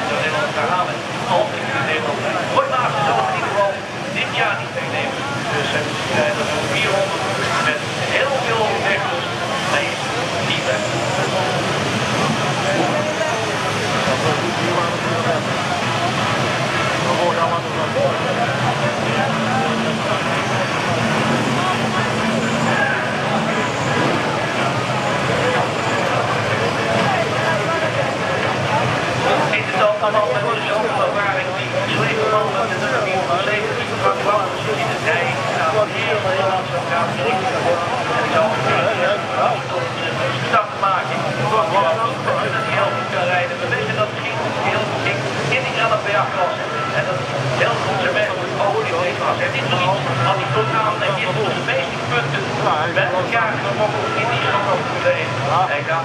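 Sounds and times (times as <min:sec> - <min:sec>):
racing car engines: 0:00.0 - 0:56.0.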